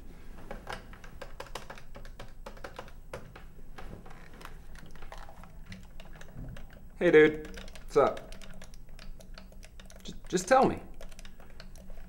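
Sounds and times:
game controller buttons clicking: 0:00.7 - 0:03.3, 0:04.4 - 0:12.0.

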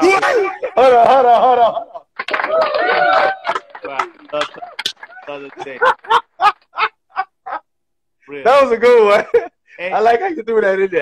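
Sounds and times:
man laughing heartily: 0:00.0 - 0:02.1, 0:05.5 - 0:07.7.

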